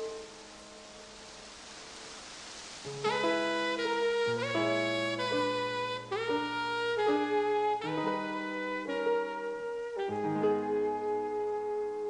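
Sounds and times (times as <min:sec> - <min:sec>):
soft background music: 0:00.0 - 0:02.2, 0:02.8 - 0:12.0
steady hiss: 0:00.0 - 0:12.0.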